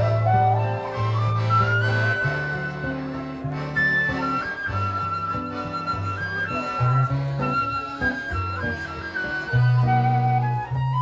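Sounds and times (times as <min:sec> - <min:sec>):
accordion bass notes and chords: 0:00.0 - 0:11.0
acoustic guitar accompaniment: 0:00.0 - 0:11.0
flute melody: 0:00.0 - 0:11.0.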